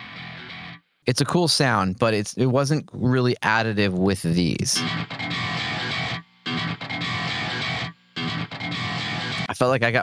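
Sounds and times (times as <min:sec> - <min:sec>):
distorted electric guitar: 0:00.0 - 0:00.8, 0:04.8 - 0:09.5.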